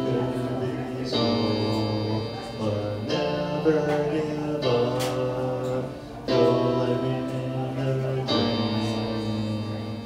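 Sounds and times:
electronic keyboard chords: 0:00.0 - 0:10.0
young man singing: 0:00.0 - 0:10.0.

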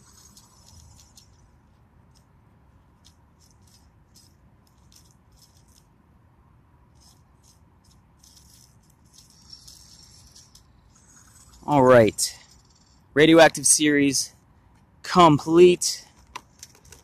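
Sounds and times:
gloved hand handling plastic toy: 0:00.0 - 0:06.0, 0:16.0 - 0:17.0.

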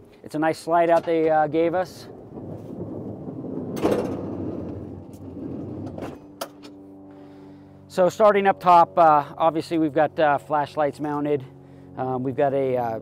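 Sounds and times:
steady low hum: 0:00.0 - 0:13.0
tray rolling on rails: 0:00.8 - 0:06.2.

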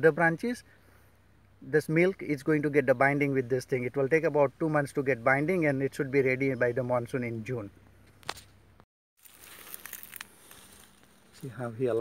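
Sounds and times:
plant rustling: 0:09.2 - 0:12.0.

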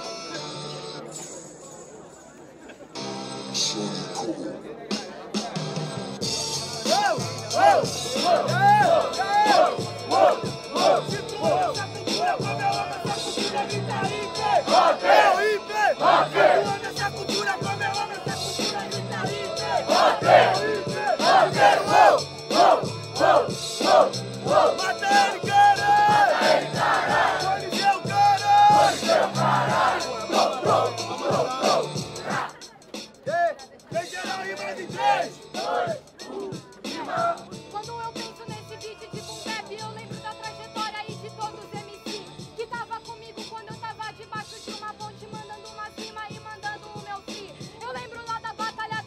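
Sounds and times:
hip-hop beat: 0:03.0 - 0:49.0
crowd yelling: 0:06.8 - 0:17.0, 0:18.7 - 0:32.5.

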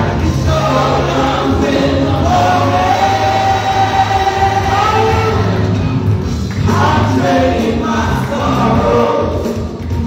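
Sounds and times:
group singing over loudspeakers: 0:00.0 - 0:10.0.

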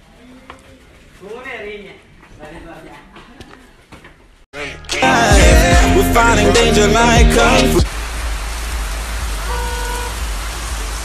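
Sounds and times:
rain falling: 0:07.8 - 0:11.0.

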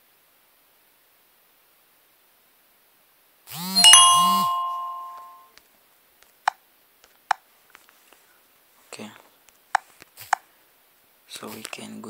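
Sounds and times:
two-note notification chime: 0:03.8 - 0:05.4.

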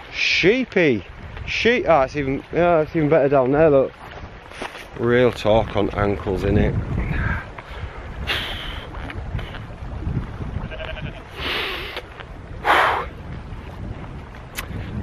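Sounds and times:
wind rumbling on microphone: 0:00.0 - 0:15.0
sheep bleating: 0:10.6 - 0:11.4.

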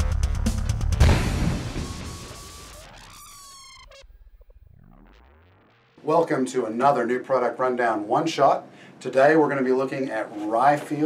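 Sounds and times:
falling whistle-like glides: 0:01.6 - 0:04.0.

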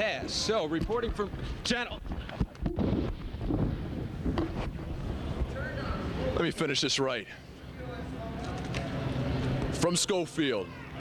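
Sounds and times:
rumbling background noise: 0:00.0 - 0:10.1.

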